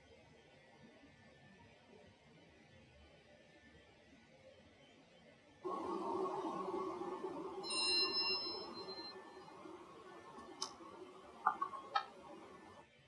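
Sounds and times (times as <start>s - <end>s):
room noise: 5.6s - 12.9s
ringing metallic ding: 5.7s - 12.8s.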